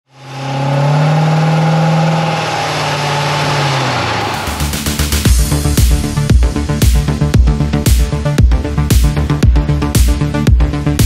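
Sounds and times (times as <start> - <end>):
car engine revving steadily: 0.0 - 11.0.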